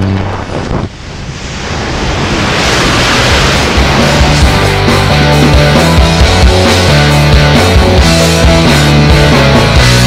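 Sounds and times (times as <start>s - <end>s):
rushing wind-like noise: 0.0s - 8.4s
rock music with heavy beat: 3.8s - 10.0s.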